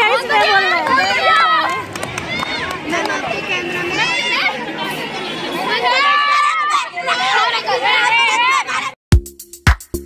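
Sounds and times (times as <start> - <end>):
children talking and calling out: 0.0 - 9.0.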